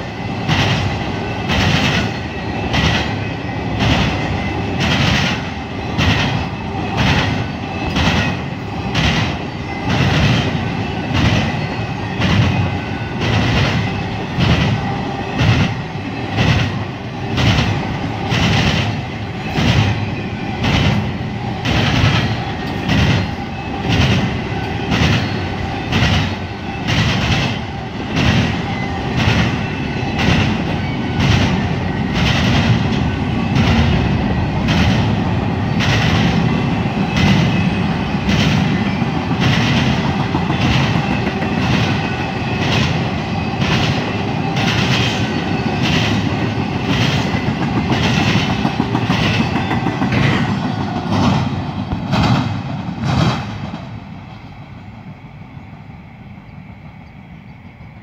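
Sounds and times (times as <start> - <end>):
wheels clacking over rail joints: 0.0 - 54.0
freight train rolling rumble: 0.0 - 58.0.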